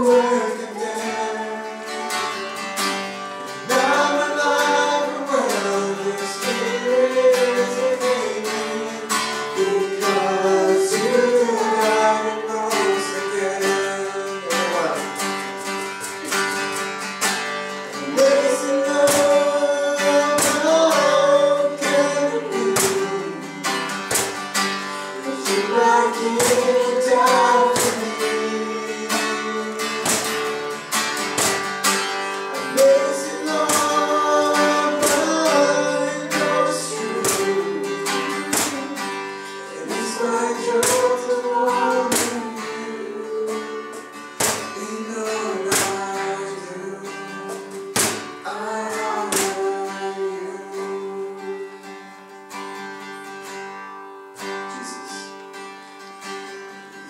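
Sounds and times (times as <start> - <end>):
women singing: 0.0 - 2.4, 3.6 - 14.2, 17.9 - 23.9, 25.1 - 30.3, 32.5 - 51.8
acoustic guitar strumming: 0.0 - 57.0.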